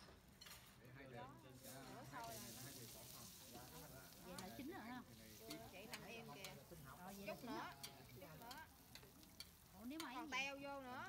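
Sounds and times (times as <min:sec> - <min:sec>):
faint sizzling in a pan: 0:00.0 - 0:11.0
chopsticks clicking on pan: 0:04.2 - 0:04.6, 0:05.2 - 0:10.4.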